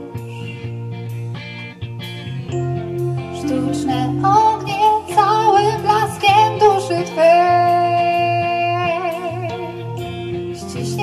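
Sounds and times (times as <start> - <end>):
band playing: 0.0 - 11.0
electric guitar lead melody: 0.0 - 11.0.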